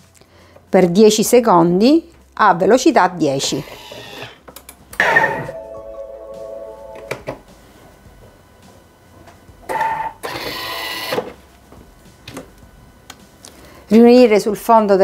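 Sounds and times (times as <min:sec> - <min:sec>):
blender motor grinding: 0:03.6 - 0:04.4
short electronic chime: 0:05.0 - 0:07.2.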